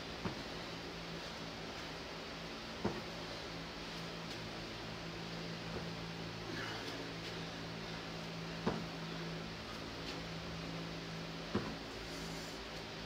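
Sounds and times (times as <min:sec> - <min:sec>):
fan humming: 0:00.0 - 0:13.0
foot thud on gym floor: 0:02.8 - 0:03.1, 0:08.6 - 0:09.0, 0:11.5 - 0:11.8.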